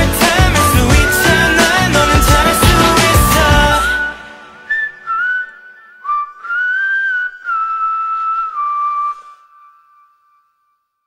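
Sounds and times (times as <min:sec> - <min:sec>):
band playing: 0:00.0 - 0:04.6
person whistling slow melody: 0:00.6 - 0:10.6.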